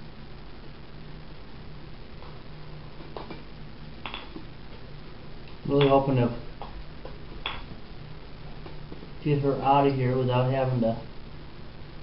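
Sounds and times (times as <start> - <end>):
background hiss: 0.0 - 12.0
low hum: 0.0 - 12.0.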